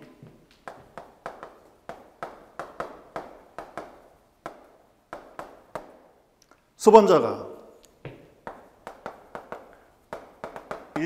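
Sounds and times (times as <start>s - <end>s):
chalk tapping on chalkboard: 0.6s - 6.1s, 8.0s - 11.0s.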